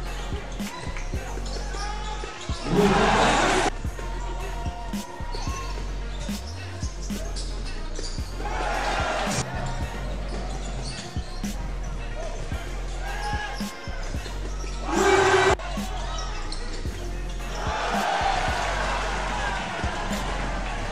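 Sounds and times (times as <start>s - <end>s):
burst of voices: 0.5s - 9.4s.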